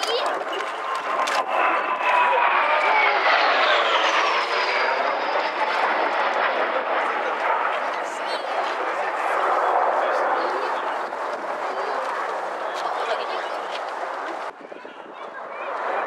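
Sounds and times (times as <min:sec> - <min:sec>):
jet engines passing by: 0:00.0 - 0:16.0.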